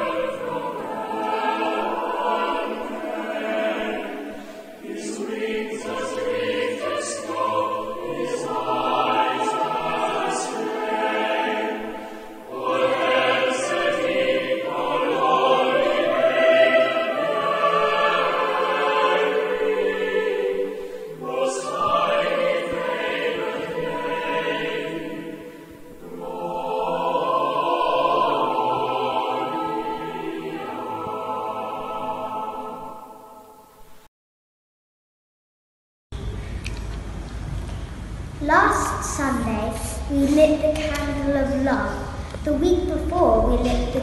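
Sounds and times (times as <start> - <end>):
choir singing: 0.0 - 34.0.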